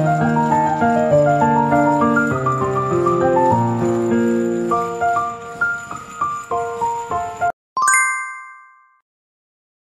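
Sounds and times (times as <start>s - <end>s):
bell-like chime: 7.8s - 9.0s.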